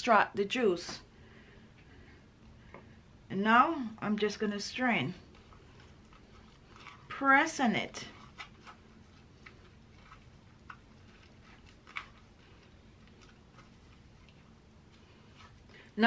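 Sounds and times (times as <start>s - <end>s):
wet potato squelching through strainer: 4.0s - 16.0s.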